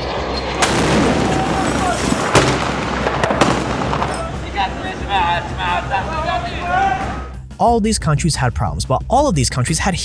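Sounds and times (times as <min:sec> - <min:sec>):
sharp gunshots: 0:00.4 - 0:04.4.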